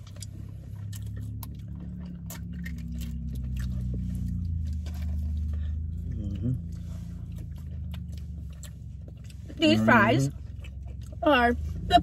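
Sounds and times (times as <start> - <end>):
chewing and biting food: 0.0 - 11.8
person humming mmm: 6.0 - 6.8.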